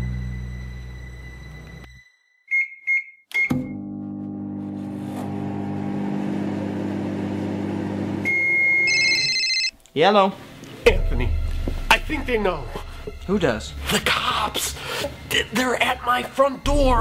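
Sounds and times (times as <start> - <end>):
microwave oven humming: 3.8 - 9.3
long high beep: 8.2 - 9.7
microwave keypad beeps: 8.2 - 9.7.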